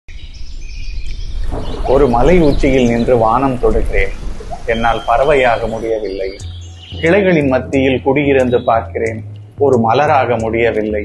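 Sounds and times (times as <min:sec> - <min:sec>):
birds chirping: 0:00.1 - 0:11.0
low steady rumble: 0:00.2 - 0:11.0
man speaking: 0:01.9 - 0:06.4, 0:07.0 - 0:11.0.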